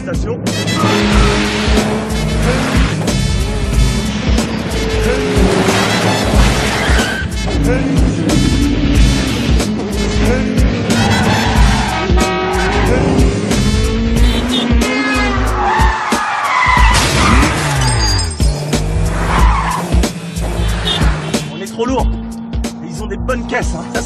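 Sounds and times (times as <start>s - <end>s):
action music with steady beat: 0.0s - 24.0s
car engines revving hard: 0.0s - 24.0s
tyres skidding and squealing: 0.0s - 24.0s.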